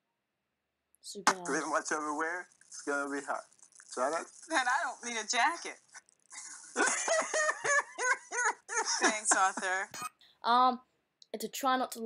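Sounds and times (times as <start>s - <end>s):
man laughing hard: 6.5s - 9.3s.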